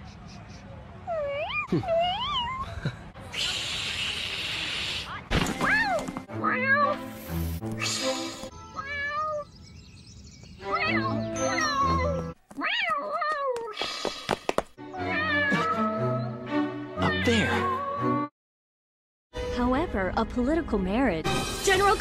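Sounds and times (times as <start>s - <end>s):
cartoon cat meowing: 10.7s - 13.5s, 15.0s - 16.2s, 17.0s - 18.1s.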